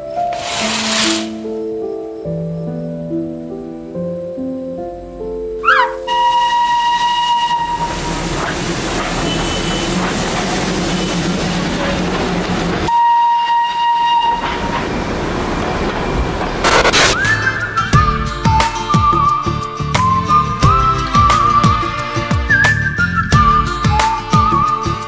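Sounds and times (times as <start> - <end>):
soft music with sustained notes: 0.0 - 8.5, 17.2 - 25.0
loud steam hiss: 0.1 - 1.5, 6.1 - 17.9
steam locomotive whistle: 5.6 - 11.4, 12.9 - 15.0, 16.6 - 25.0.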